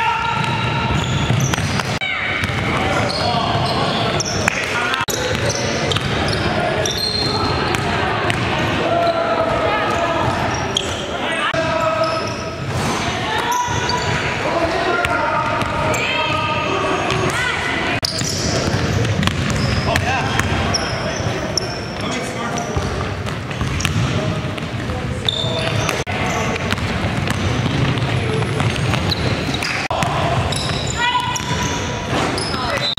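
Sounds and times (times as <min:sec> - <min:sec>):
basketball bouncing on gym floor: 0:00.3 - 0:02.8, 0:18.1 - 0:20.8, 0:22.7 - 0:31.7.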